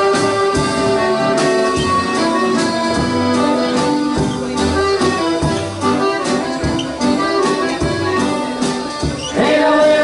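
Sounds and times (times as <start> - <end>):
accordion: 0.0 - 10.0
drum kit steady beat: 0.0 - 10.0
guitar: 0.0 - 10.0.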